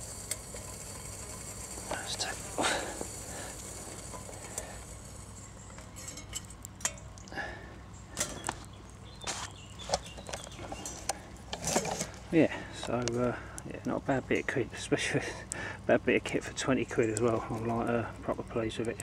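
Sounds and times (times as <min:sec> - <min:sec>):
wood fire crackling: 0:00.0 - 0:19.0.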